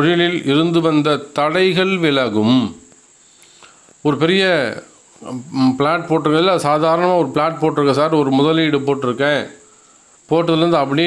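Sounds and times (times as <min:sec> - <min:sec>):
man speaking: 0:00.0 - 0:03.0, 0:04.0 - 0:09.6, 0:10.3 - 0:11.0
crickets chirring: 0:00.0 - 0:11.0.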